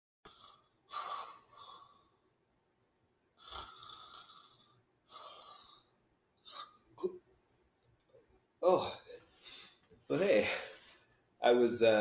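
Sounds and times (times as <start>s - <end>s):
man snoring: 0.3s - 2.0s, 3.4s - 5.9s.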